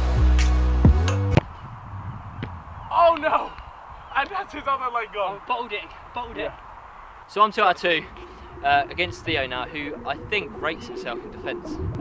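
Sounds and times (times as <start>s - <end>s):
background music: 0.0s - 1.4s
quiet outdoor air: 1.4s - 12.0s.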